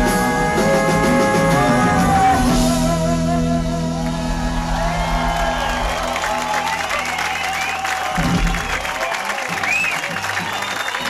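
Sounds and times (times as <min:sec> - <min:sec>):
audience applauding and cheering: 0:03.8 - 0:11.0.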